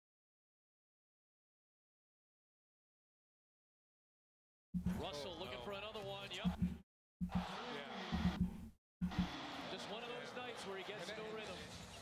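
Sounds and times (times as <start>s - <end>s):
basketball dribbling: 6.5s - 7.5s, 8.2s - 9.4s.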